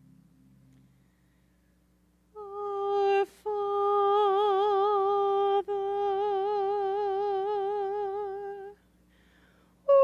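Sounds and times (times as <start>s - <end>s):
woman singing unaccompanied: 2.3s - 8.8s.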